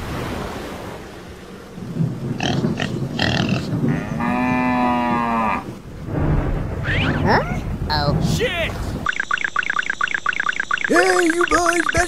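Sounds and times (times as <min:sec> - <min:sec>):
cow grunting: 0:02.4 - 0:05.7
cow mooing: 0:02.4 - 0:05.8.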